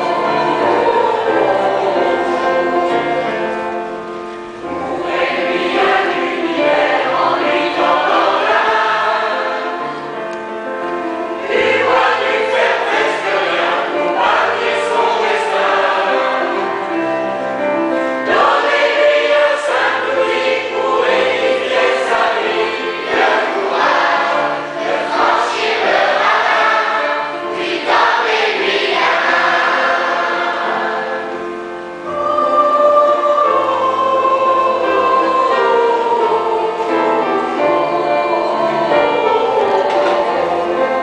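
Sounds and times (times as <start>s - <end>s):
children's choir singing: 0.0s - 41.0s
piano accompaniment: 0.0s - 41.0s.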